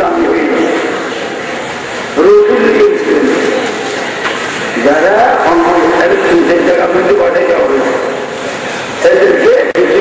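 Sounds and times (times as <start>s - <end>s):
man preaching over loudspeaker: 0.0s - 1.0s, 2.2s - 3.8s, 4.8s - 8.3s, 9.0s - 10.0s.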